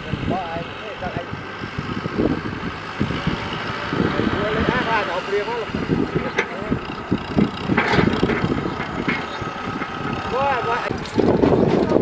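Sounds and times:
tractor engine running: 0:01.2 - 0:12.0
people's voices: 0:03.0 - 0:12.0
light rattles and knocks: 0:06.1 - 0:10.3, 0:10.9 - 0:12.0.

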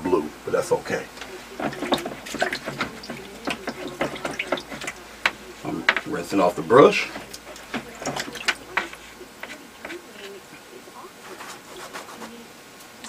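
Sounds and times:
paintbrush rinsed in water container: 0:01.2 - 0:10.0
handling sounds: 0:01.2 - 0:10.4.

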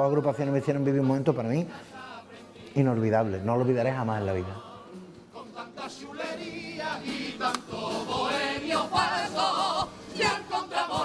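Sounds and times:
group singing in chorus: 0:01.7 - 0:11.0.

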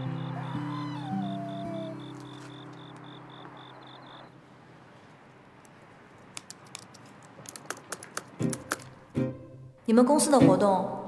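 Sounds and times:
laptop keyboard typing: 0:06.4 - 0:09.0.

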